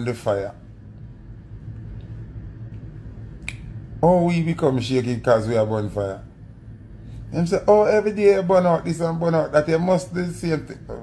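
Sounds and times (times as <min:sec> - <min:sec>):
steady low hum: 0:00.0 - 0:11.0
sharp click: 0:03.4 - 0:03.7.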